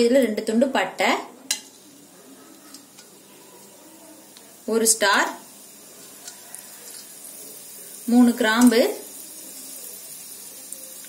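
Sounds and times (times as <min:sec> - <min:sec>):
oil sizzling with small ticks: 0:01.4 - 0:11.0.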